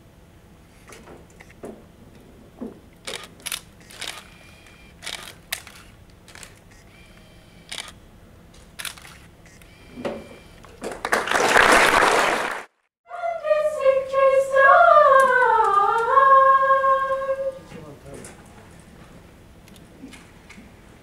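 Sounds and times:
camera shutter clicks: 3.0 - 8.0, 8.8 - 9.7
loud applause: 10.8 - 13.2.

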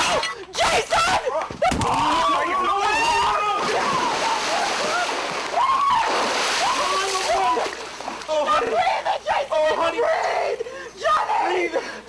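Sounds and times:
water splashing in pool: 1.8 - 8.8.

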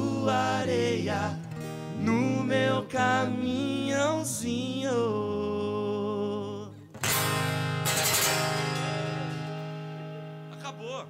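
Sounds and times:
guitar chord strums ringing: 6.9 - 11.0.

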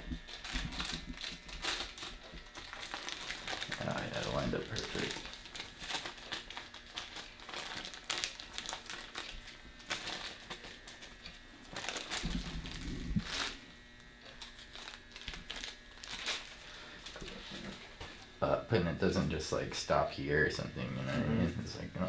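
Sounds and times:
paper sheet crinkling: 0.1 - 13.6, 14.3 - 17.8.

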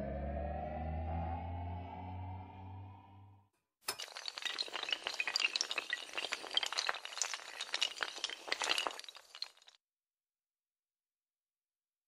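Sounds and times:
tiles toppling like dominoes: 3.9 - 9.8.

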